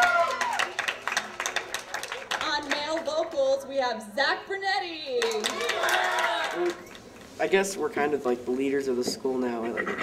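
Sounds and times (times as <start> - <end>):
audience clapping: 0.0 - 3.5, 5.2 - 7.2.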